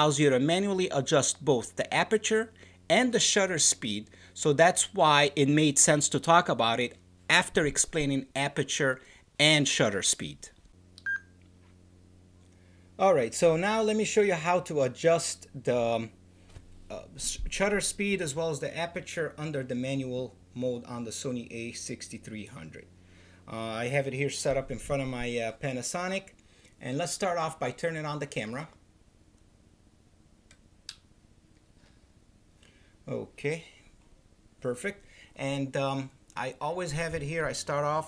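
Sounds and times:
faint low electrical hum: 0.0 - 38.0
short electronic beep: 11.0 - 11.4.

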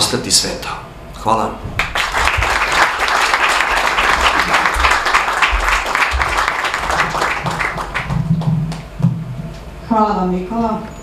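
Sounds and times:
audience applauding: 1.8 - 8.9.

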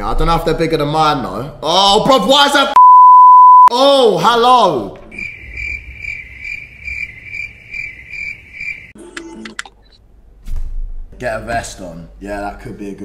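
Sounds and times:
high pulsing chirping: 5.2 - 9.0.

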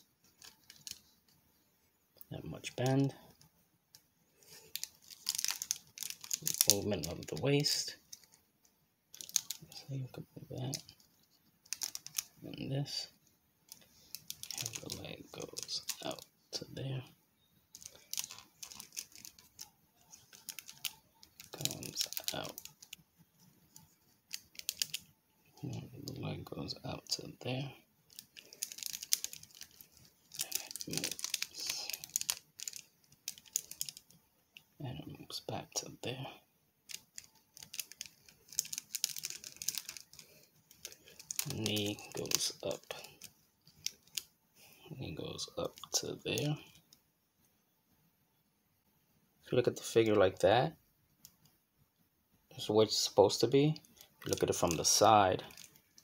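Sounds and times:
toy figure joints clicking: 28.2 - 34.0.

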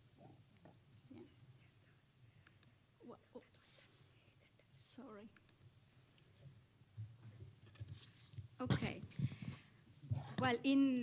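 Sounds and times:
hushed whispered speech: 1.1 - 5.3.

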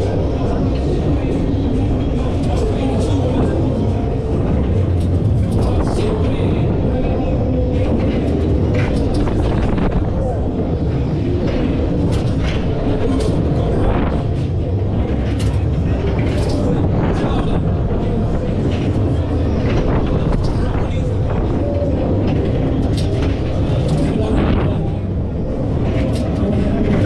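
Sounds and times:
ride machinery and wind rumble: 0.0 - 27.0
voices: 0.0 - 27.0.

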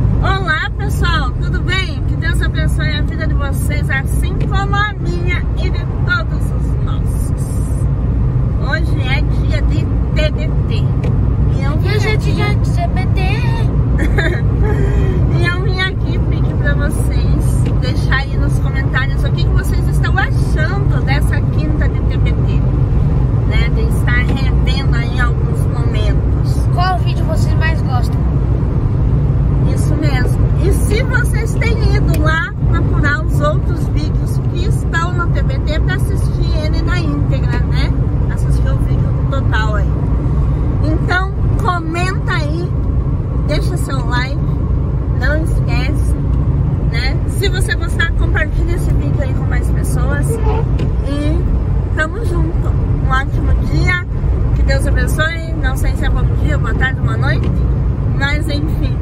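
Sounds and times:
road and engine rumble: 0.0 - 59.0
woman talking: 0.2 - 7.8, 8.6 - 22.7, 23.4 - 27.9, 29.6 - 40.0, 40.8 - 42.8, 43.4 - 44.5, 45.1 - 46.2, 46.9 - 59.0.

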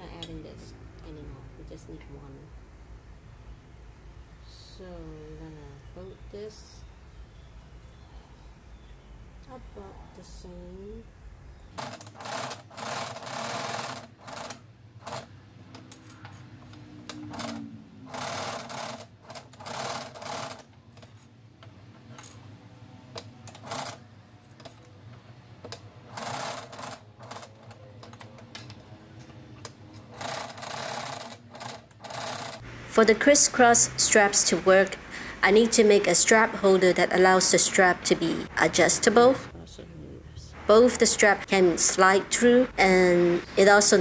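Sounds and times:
faint steady hum: 0.0 - 44.0
sewing machine stitching: 11.8 - 15.3, 17.1 - 21.2, 23.2 - 24.1, 26.1 - 28.6, 29.9 - 32.6.

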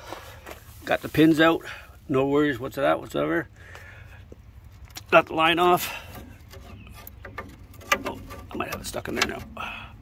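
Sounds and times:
metallic clicks and rubbing: 6.1 - 9.6.

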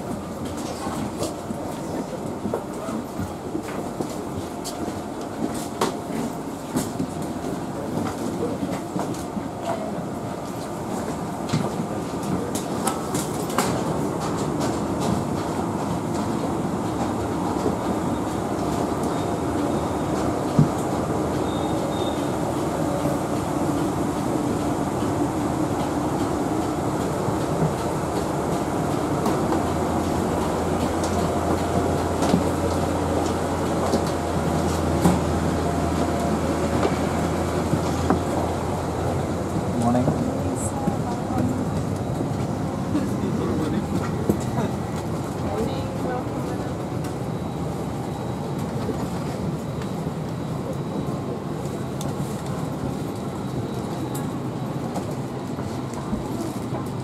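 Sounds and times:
footsteps of passengers: 0.0 - 57.0.

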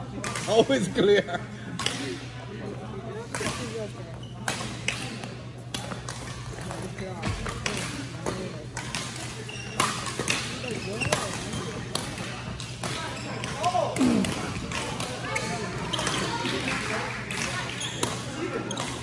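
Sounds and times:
people talking: 0.0 - 19.0.

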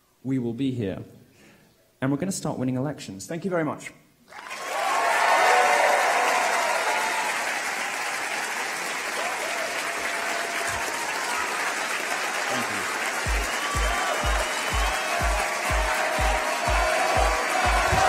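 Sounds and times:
audience applause: 4.3 - 18.0
music with kick-drum beat: 13.2 - 18.0.

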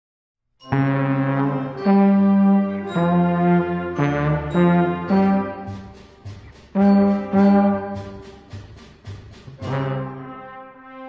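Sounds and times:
trombone held notes: 0.6 - 8.7, 9.5 - 11.0.

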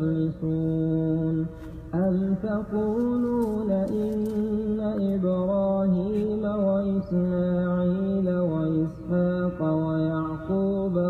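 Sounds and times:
person chanting recitation: 0.0 - 11.0.

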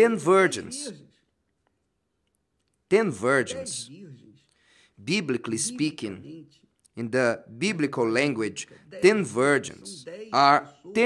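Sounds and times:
man speaking: 0.0 - 1.2, 2.9 - 11.0.

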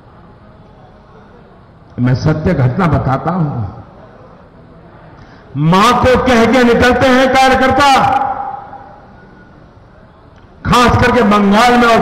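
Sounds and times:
faint background noise: 0.0 - 12.0
man speaking over public address: 2.0 - 3.9, 5.5 - 8.9, 10.6 - 12.0.

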